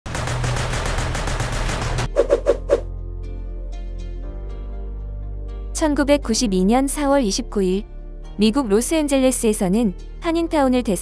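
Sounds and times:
rifle firing rapid shots: 0:00.1 - 0:02.1.

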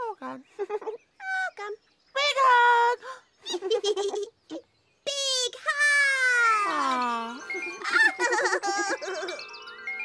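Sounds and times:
tinkling children's music: 0:05.9 - 0:10.0.

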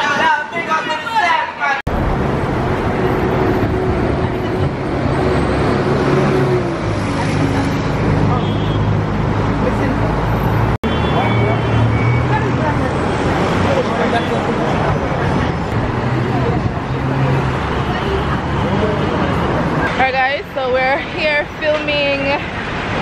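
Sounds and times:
voices talking: 0:06.3 - 0:22.6.

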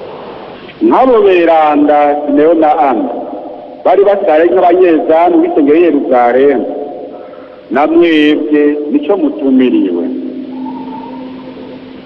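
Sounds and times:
steady low tone: 0:08.8 - 0:12.0
faint higher tone: 0:10.1 - 0:12.0.

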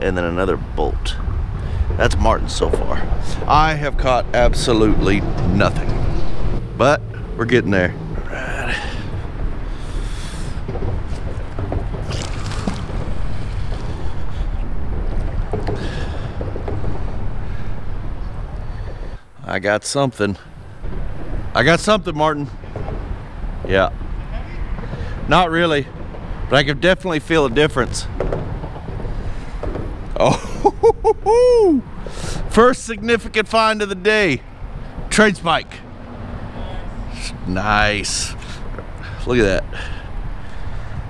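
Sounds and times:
wind buffeting microphone: 0:00.0 - 0:19.4, 0:20.3 - 0:41.0
low outdoor rumble: 0:00.0 - 0:41.0.

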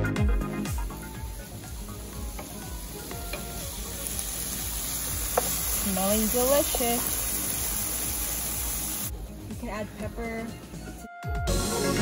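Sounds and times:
filling sizzling in a frying pan: 0:00.6 - 0:09.1.

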